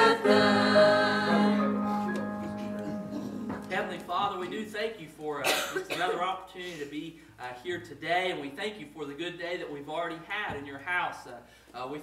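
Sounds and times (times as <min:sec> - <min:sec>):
person coughing: 0:05.4 - 0:06.9.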